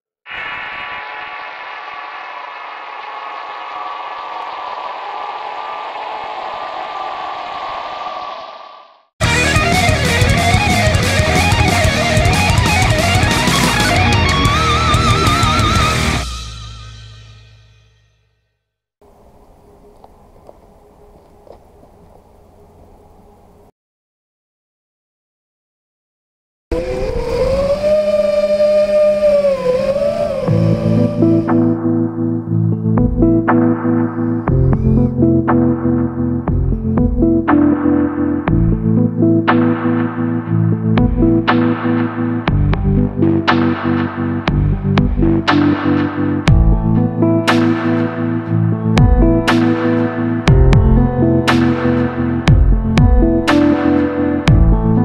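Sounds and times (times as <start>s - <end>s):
background music: 9.2s - 17.4s, 30.4s - 55.0s
dense mechanical hum: 19.0s - 23.7s.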